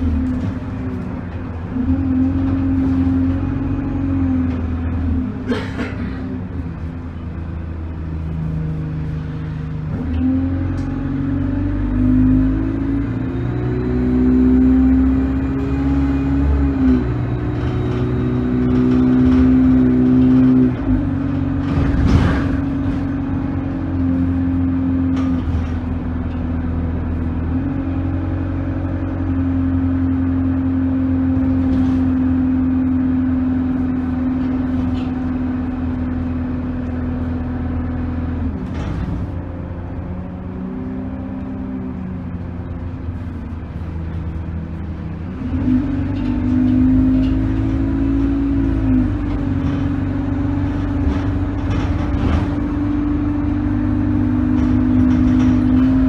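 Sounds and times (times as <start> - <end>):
bus engine and gear changes: 0.0 - 56.0.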